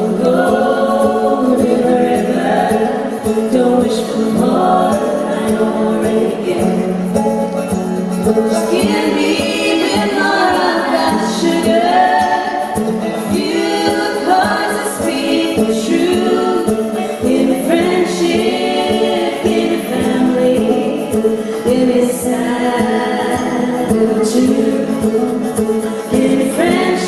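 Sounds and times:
women singing in harmony: 0.0s - 7.2s, 8.2s - 27.0s.

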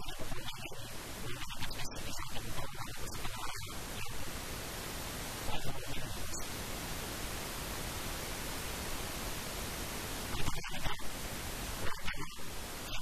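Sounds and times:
static hiss: 0.0s - 13.0s.

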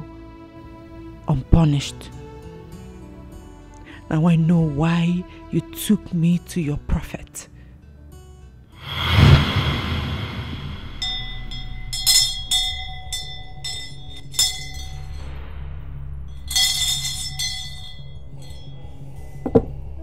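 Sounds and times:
low music drone: 8.8s - 20.0s
brass handbell shaken: 11.0s - 15.3s, 16.4s - 18.7s.

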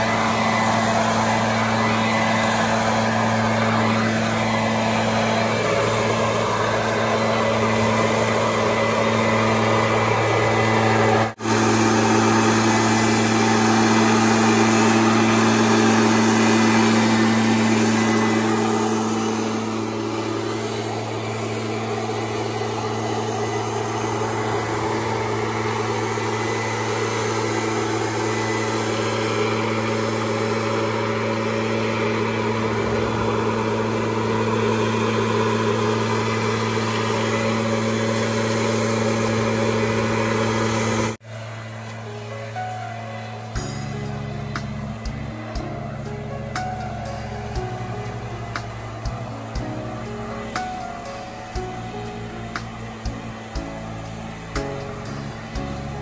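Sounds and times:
air rushing from nozzle: 0.0s - 56.0s
leaf blower engine drone: 0.0s - 56.0s.

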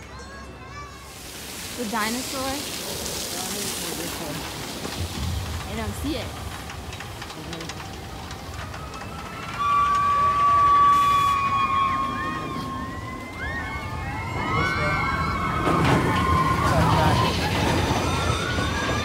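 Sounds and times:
roller coaster going by: 0.0s - 19.0s
riders shrieking: 8.3s - 19.0s.

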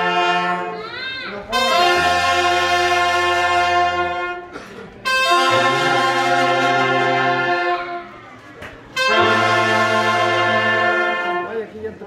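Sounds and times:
brass band chords: 0.0s - 8.2s, 8.9s - 11.8s.

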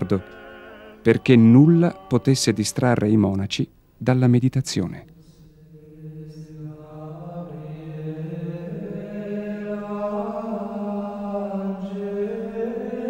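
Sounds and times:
plainchant singing: 0.0s - 3.4s, 4.7s - 13.0s.

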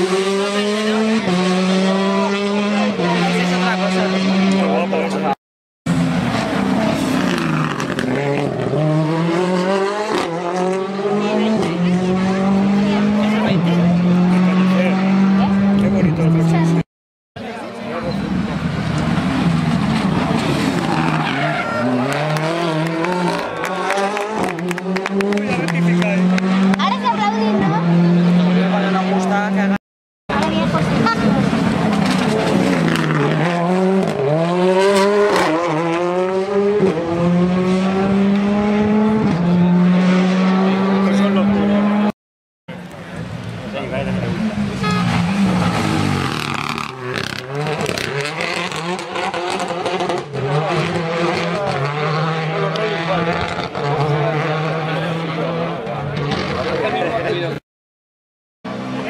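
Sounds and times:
rally car engines revving: 0.0s - 57.6s, 58.7s - 59.0s.

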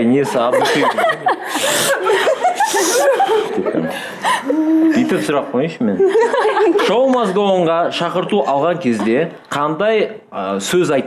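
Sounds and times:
people talking and laughing: 0.0s - 8.7s.

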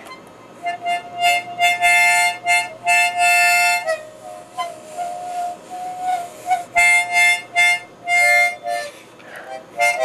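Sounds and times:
harmonica chords and notes: 0.0s - 10.0s.

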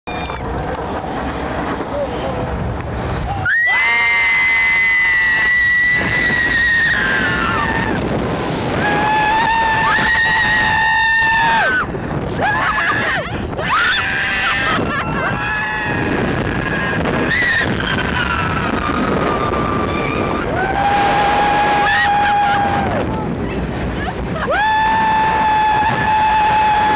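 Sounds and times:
roller coaster train noise: 0.1s - 26.9s
rush of wind: 0.1s - 26.9s
people screaming on roller coaster: 3.2s - 23.3s, 24.1s - 26.9s.

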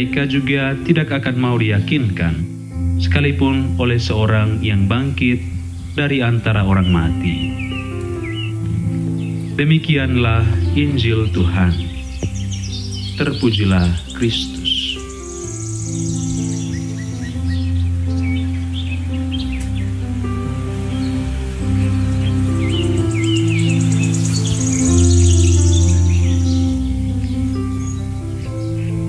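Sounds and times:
birdsong chirps: 0.0s - 29.0s
slow instrumental music: 0.0s - 29.0s
high rapid bird trill: 4.5s - 29.0s.

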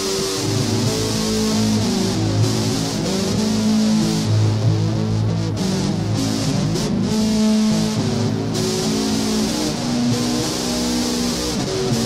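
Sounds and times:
distorted electric guitar: 0.0s - 12.0s.

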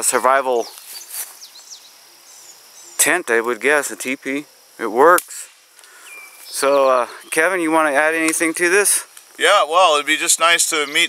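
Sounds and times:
faint insect buzz: 0.0s - 11.0s
soft rustle: 0.2s - 1.7s
high bird chirps: 0.6s - 3.2s, 5.9s - 7.8s.

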